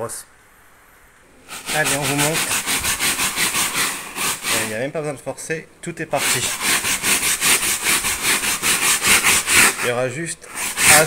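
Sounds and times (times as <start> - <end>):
brush scrubbing fabric: 1.5 - 4.9, 6.2 - 11.0.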